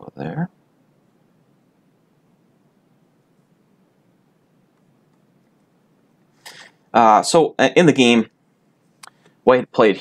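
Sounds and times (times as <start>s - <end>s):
man speaking: 0.0s - 0.5s, 6.9s - 8.3s, 9.4s - 10.0s
faint room hiss: 0.0s - 10.0s.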